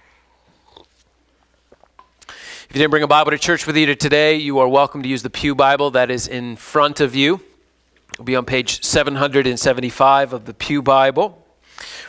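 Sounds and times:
person drinking from a cup: 0.4 - 2.4.

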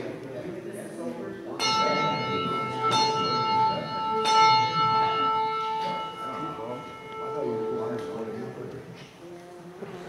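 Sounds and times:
church bell tolling: 1.6 - 8.9.

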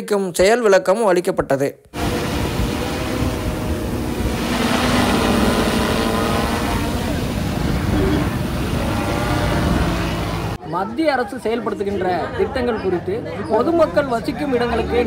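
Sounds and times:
drone rotors buzzing: 1.9 - 10.6.

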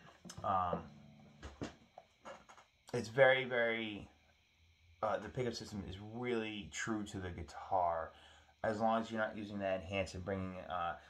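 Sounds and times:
man saying um: 0.3 - 0.9, 2.9 - 4.1, 5.0 - 11.0
breaths: 8.1 - 8.6.

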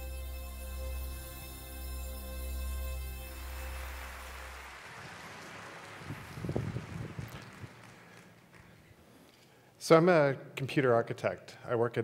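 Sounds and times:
low intro music notes: 0.0 - 7.2
audience applause: 3.3 - 9.0.

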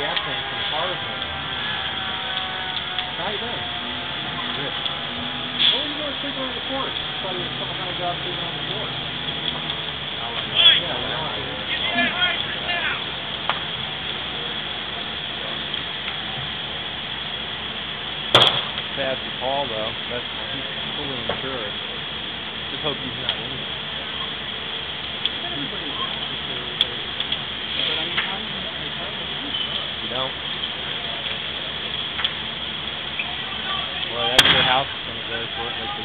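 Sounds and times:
indistinct voices talking: 0.0 - 36.0.

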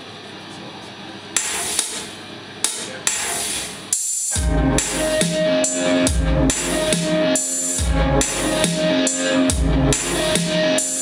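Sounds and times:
sharp hammer-like noisy strikes: 1.4 - 11.0.

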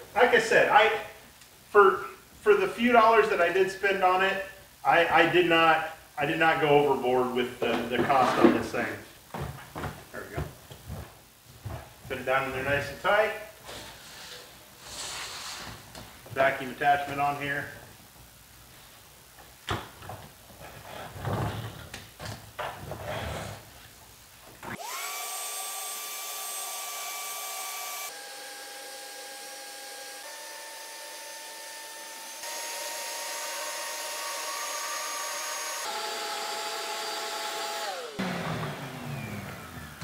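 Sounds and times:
shop vacuum motor whine: 24.7 - 40.0.

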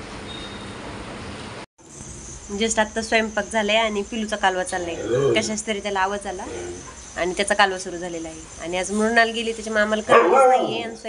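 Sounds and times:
woman talking: 2.5 - 11.0
rough voiced sound: 4.8 - 6.9.

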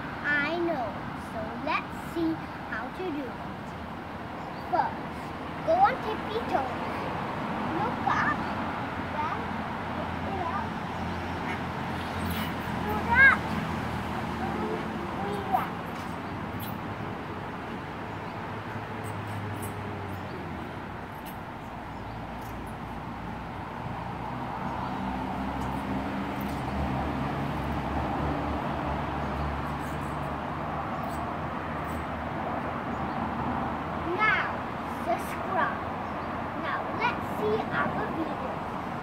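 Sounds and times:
outdoor background hum: 0.0 - 39.0.

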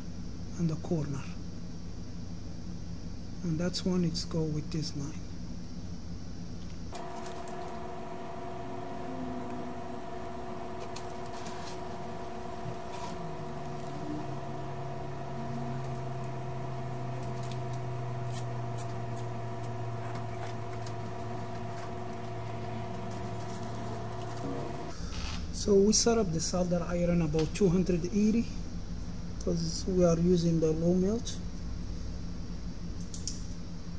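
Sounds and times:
steady hum of even tones: 6.9 - 33.0.

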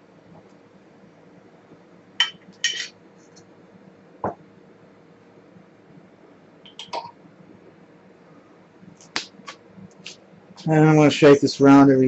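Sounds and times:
glassware clinking: 2.2 - 3.0, 6.7 - 7.2.

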